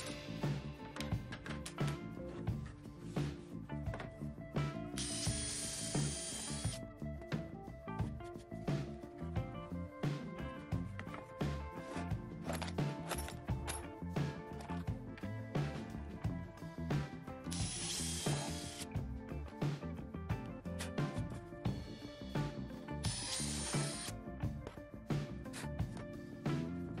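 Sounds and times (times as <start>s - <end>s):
background music with beat: 0.0s - 27.0s
drill boring into wood: 5.0s - 6.8s, 17.5s - 18.9s, 23.0s - 24.1s.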